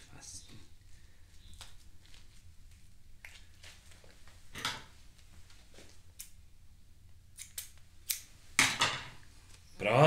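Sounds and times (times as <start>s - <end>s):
scissors snipping: 7.4s - 8.3s.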